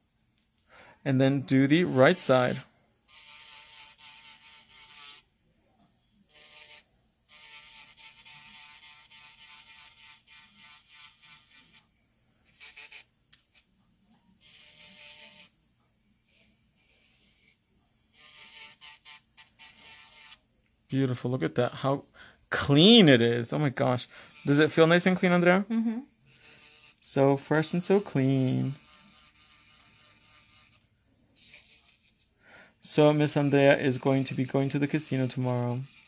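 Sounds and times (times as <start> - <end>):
electric nail drill: 1.8 - 5.3, 6.2 - 15.6, 16.2 - 20.4, 24.2 - 36.0.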